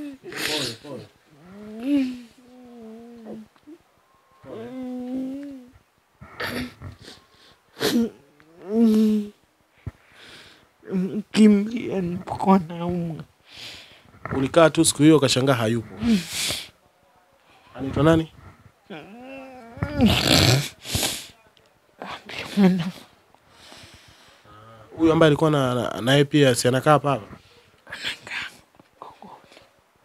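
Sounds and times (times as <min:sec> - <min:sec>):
sharp sniff: 0:16.1 - 0:16.8, 0:20.6 - 0:21.4.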